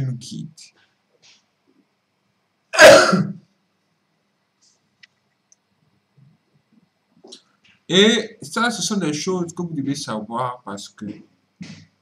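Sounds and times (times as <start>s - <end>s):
man coughing: 2.8s - 3.4s.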